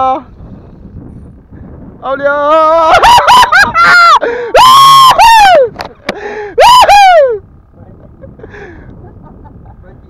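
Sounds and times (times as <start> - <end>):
man laughing in high whoops: 2.8 - 5.7.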